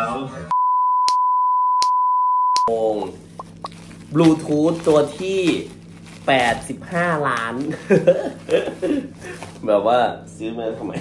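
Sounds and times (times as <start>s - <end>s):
censor bleep: 0.5s - 2.7s.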